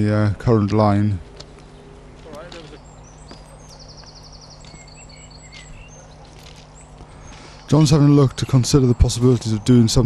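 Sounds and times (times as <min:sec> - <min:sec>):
low steady hum: 0:00.0 - 0:10.0
songbirds chirping: 0:00.0 - 0:10.0
bird trill: 0:01.4 - 0:10.0.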